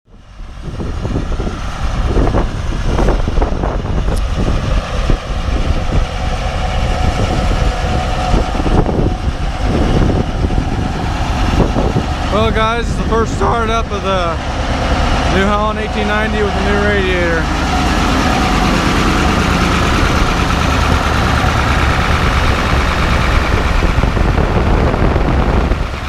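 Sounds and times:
tractor engine running: 0:00.1 - 0:26.0.

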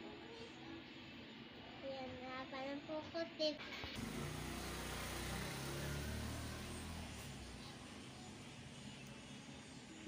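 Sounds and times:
low motor hum: 0:04.0 - 0:07.8.

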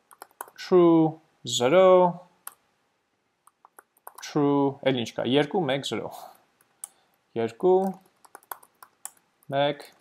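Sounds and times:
computer keyboard keystrokes: 0:00.0 - 0:00.6, 0:03.5 - 0:04.3, 0:07.8 - 0:09.2.

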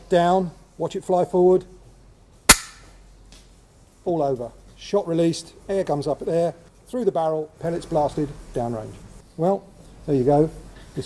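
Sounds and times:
air rifle hammer snap: 0:02.5 - 0:03.0.

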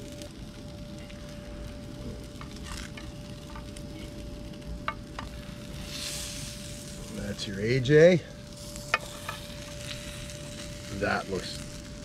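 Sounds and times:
fish fillets sizzling over charcoal: 0:00.0 - 0:12.0.

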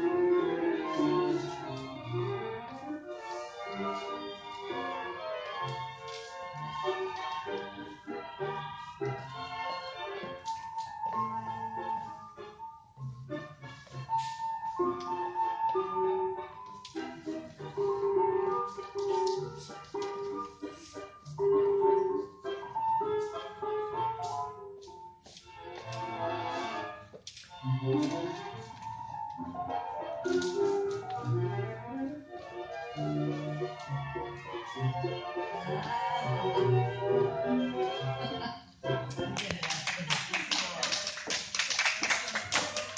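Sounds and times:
waltz music over loudspeakers: 0:00.0 - 0:42.9
audience applauding: 0:39.4 - 0:42.9.

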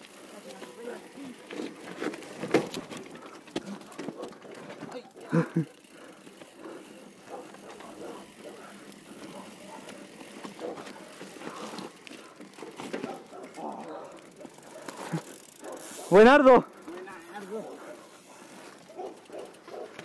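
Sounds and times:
bike clicks and rattles: 0:00.0 - 0:20.0.

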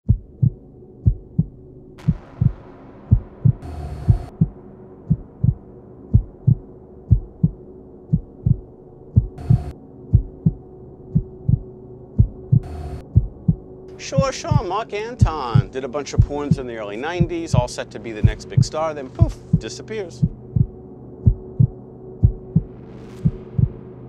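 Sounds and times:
heartbeat low thumps: 0:00.1 - 0:14.6, 0:15.2 - 0:16.6, 0:17.2 - 0:23.8
droning hum: 0:00.1 - 0:24.0
electronic static bursts: 0:09.4 - 0:09.7.

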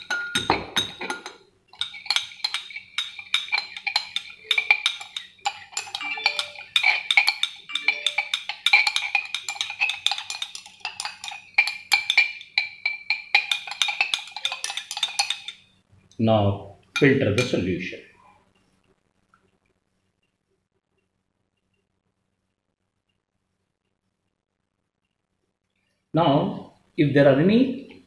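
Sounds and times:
glass rod clinking in beaker: 0:00.0 - 0:15.7, 0:17.0 - 0:17.6.

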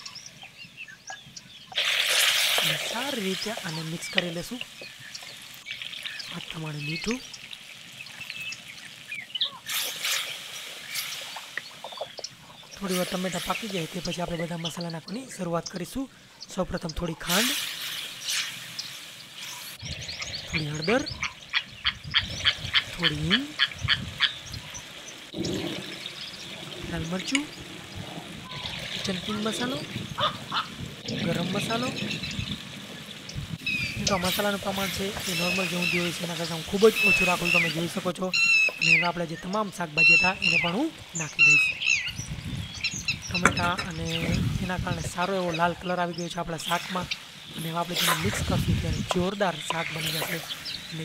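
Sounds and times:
small birds chirping: 0:00.0 - 0:51.0
tomatoes sizzling in hot oil: 0:00.0 - 0:51.0.

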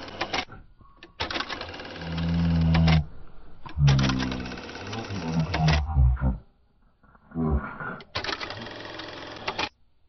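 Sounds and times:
rapid mechanical clicking: 0:08.1 - 0:09.7.

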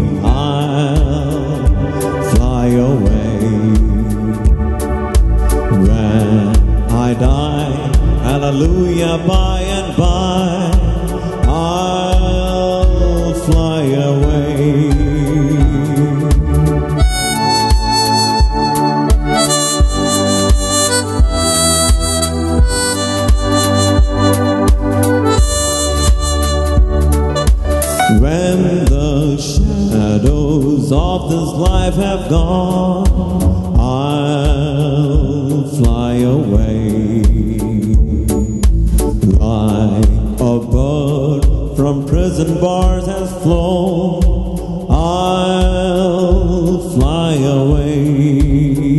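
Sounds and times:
man singing into microphone: 0:00.0 - 0:04.6, 0:05.7 - 0:18.6, 0:28.0 - 0:48.9
band accompaniment with steady beat: 0:00.0 - 0:48.9
bass notes: 0:00.0 - 0:48.9.

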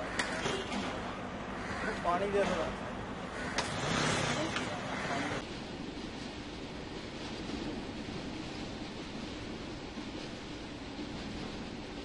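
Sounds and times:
voices: 0:00.0 - 0:05.4
road vehicle passing: 0:00.8 - 0:05.4.

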